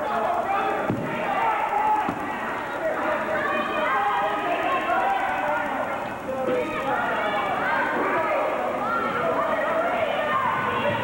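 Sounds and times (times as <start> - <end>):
crowd shouting and chattering: 0.0 - 11.0.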